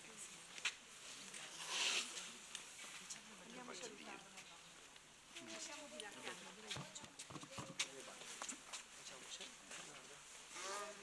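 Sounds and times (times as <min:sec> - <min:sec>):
faint voices of people chatting: 0:00.0 - 0:11.0.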